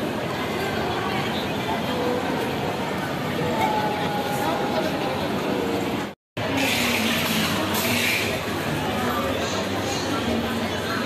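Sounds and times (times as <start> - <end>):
mall crowd noise: 0.0 - 11.0.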